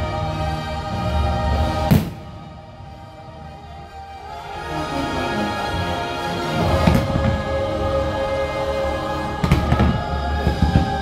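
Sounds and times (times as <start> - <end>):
show music over loudspeakers: 0.0 - 11.0
firework bangs: 1.9 - 2.4, 6.6 - 7.7, 9.4 - 11.0.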